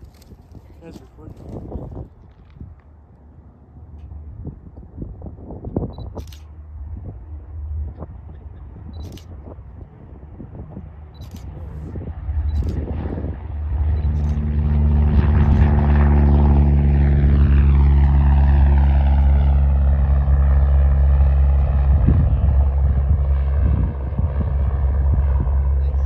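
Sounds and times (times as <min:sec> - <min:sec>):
plane engine and propeller drone: 0:00.0 - 0:26.0.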